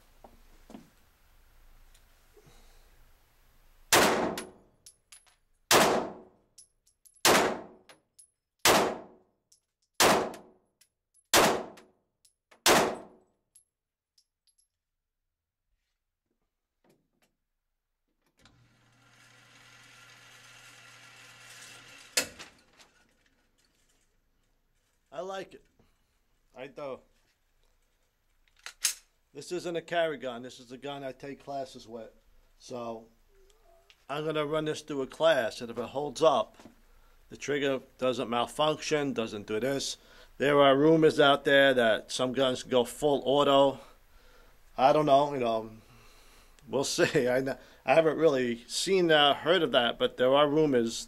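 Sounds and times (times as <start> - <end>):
pistol shots echoing: 3.9 - 4.5, 5.7 - 6.2, 7.2 - 7.8, 8.7 - 9.1, 10.0 - 10.5, 11.3 - 11.8, 12.6 - 13.1.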